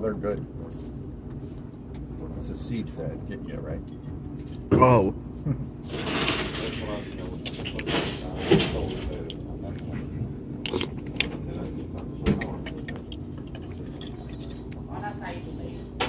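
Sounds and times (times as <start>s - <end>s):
tableware clinking: 12.3s - 14.8s.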